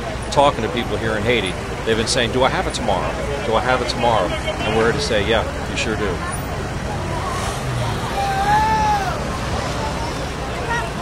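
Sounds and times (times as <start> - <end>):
rumble of motor traffic: 0.0 - 11.0.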